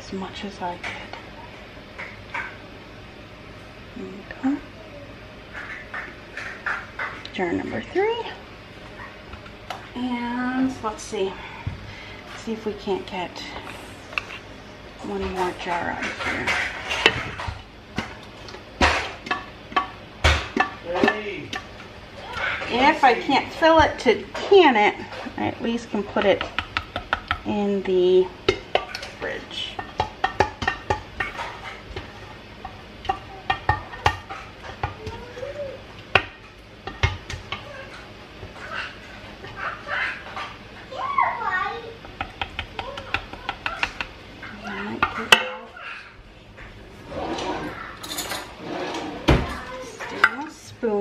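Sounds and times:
metal pot knocking and clanking: 18.8s - 21.7s, 26.1s - 27.5s, 29.7s - 35.1s, 36.1s - 37.7s.

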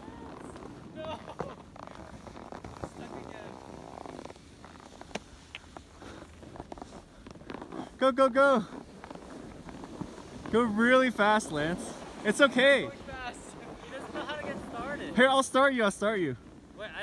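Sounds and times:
skis scraping on snow: 0.0s - 17.0s.

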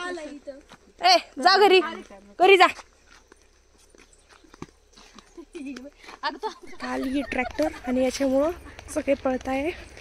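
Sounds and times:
faint footsteps on dirt path: 0.0s - 10.0s.

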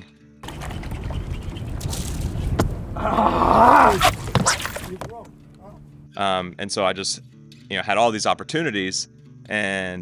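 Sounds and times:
wind rumbling on microphone: 0.5s - 4.4s
background music: 4.6s - 10.0s.

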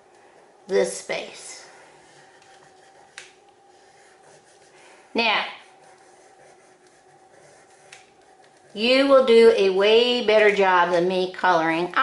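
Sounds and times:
crayon rubbing on paper: 1.7s - 4.8s, 5.4s - 9.3s.

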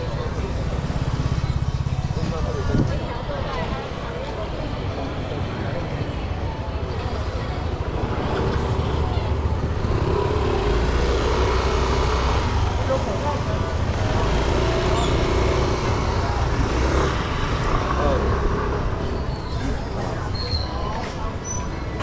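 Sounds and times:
people's voices: 0.0s - 22.0s
scooter engines rumbling: 0.0s - 22.0s.

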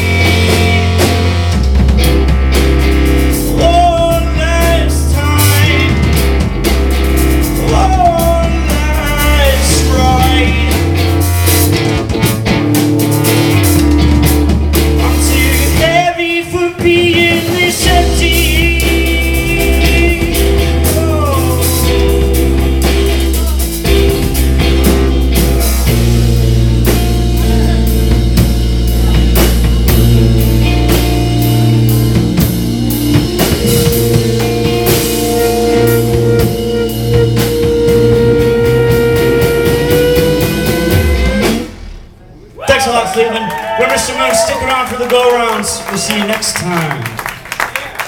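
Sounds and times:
electric guitar: 0.0s - 42.2s
drums: 0.0s - 48.0s
rock band playing: 0.0s - 48.0s.

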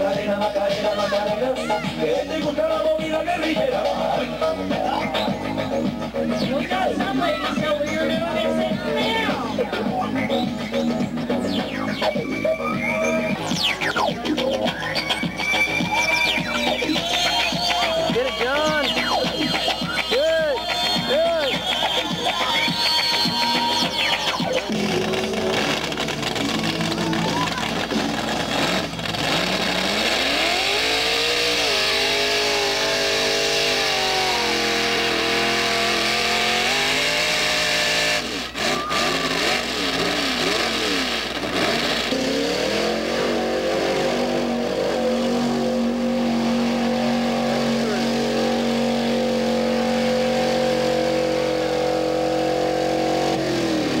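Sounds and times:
off-road vehicle engine revving: 0.0s - 54.0s.

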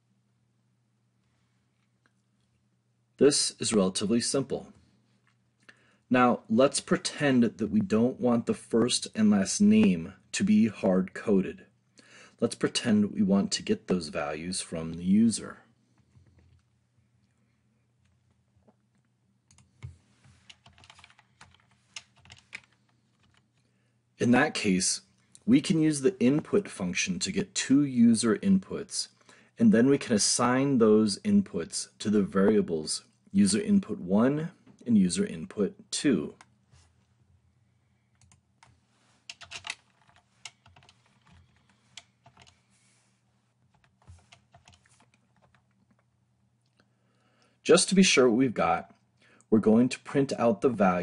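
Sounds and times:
computer keyboard clicking: 20.5s - 23.4s, 38.2s - 38.7s, 39.3s - 42.5s, 43.7s - 46.0s.

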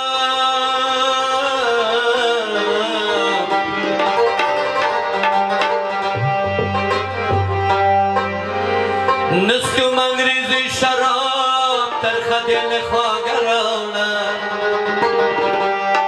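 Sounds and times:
harmonium chords: 0.0s - 16.0s
tabla strokes: 3.6s - 9.2s
tabla bass stroke swooping up: 6.1s - 8.3s.

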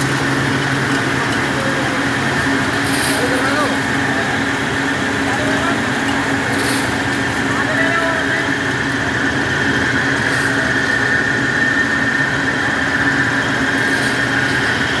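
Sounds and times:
grinding machine running: 0.0s - 15.0s
steady high whine: 0.0s - 15.0s.

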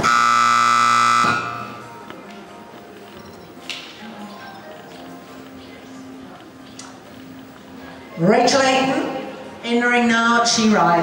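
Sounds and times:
electronic arena buzzer: 0.0s - 1.8s.

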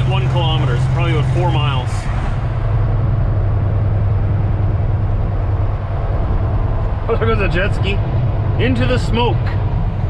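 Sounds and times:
diesel truck engine running: 0.0s - 10.0s
road and tyre noise: 0.0s - 10.0s.

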